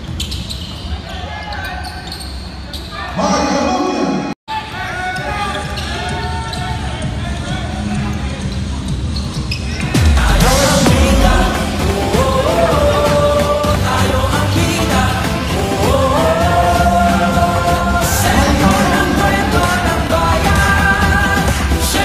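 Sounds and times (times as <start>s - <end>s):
sneaker squeaks: 0.0s - 3.2s, 8.4s - 9.9s
players' voices: 2.9s - 8.4s, 10.0s - 22.0s.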